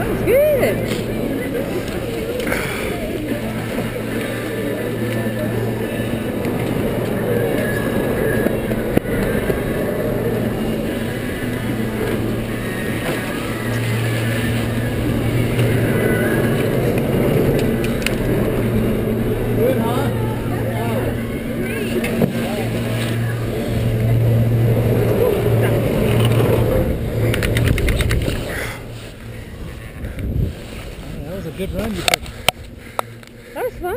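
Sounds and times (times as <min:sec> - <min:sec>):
chairlift machinery humming: 0:00.0 - 0:33.9.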